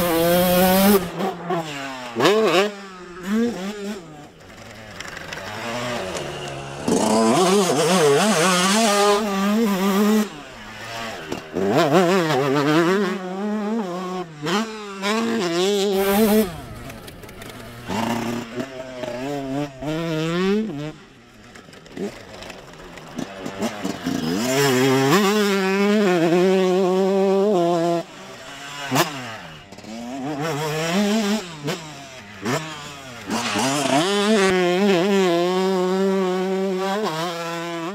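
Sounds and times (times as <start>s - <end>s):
motocross engine revving: 0.0s - 37.9s.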